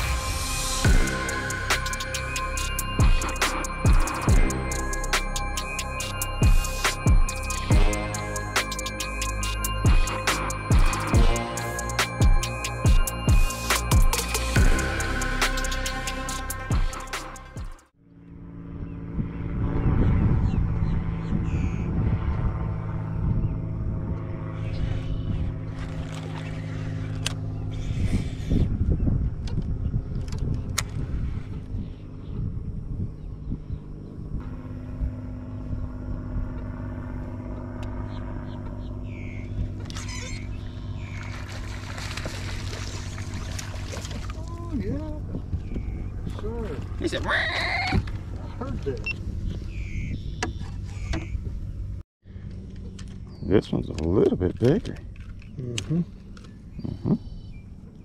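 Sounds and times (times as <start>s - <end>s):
boat motor humming: 0.0s - 58.0s.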